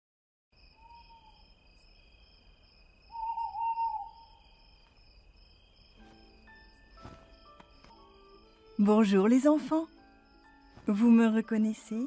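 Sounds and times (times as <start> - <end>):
crickets chirping: 0.6 - 12.0
owl hooting: 3.1 - 4.5.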